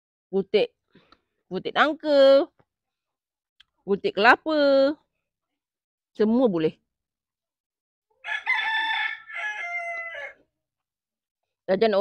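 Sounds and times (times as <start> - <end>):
rooster crowing: 8.2 - 10.5.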